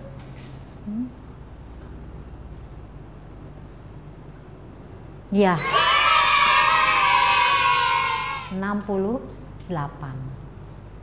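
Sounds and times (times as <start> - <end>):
children cheering: 5.6 - 8.6.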